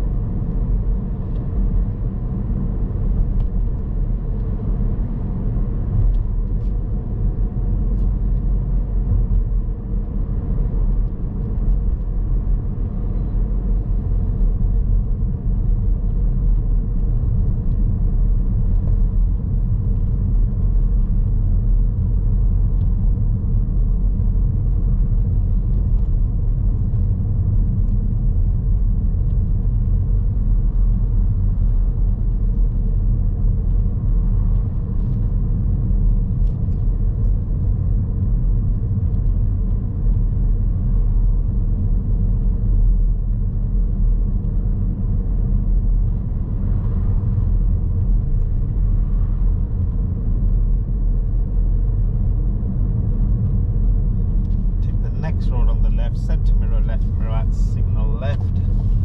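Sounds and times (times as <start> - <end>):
car interior driving rumble: 0.0 - 59.0.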